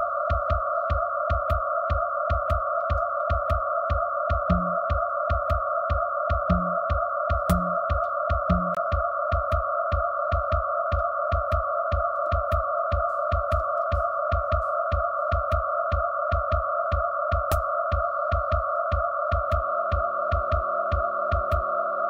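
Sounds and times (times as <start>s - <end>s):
low kick thuds and clicks: 2.3s - 5.6s, 6.3s - 18.6s.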